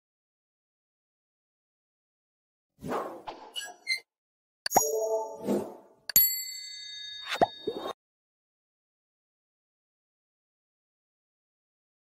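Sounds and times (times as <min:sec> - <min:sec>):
bell-like ding: 0:06.1 - 0:07.9.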